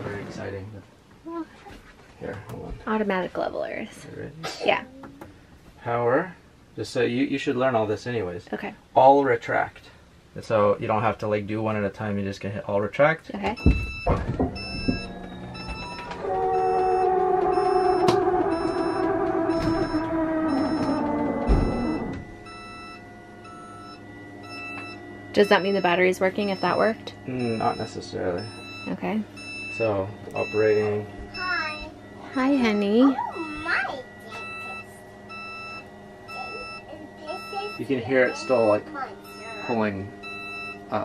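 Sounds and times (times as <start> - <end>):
low steady hum: 0.0 - 41.0
short beeps: 13.6 - 41.0
leveling jack motor whine: 14.1 - 41.0.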